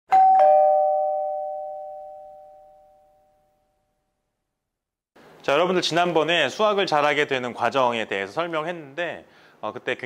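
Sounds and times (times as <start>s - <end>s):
two-note ding-dong chime: 0.1s - 3.5s.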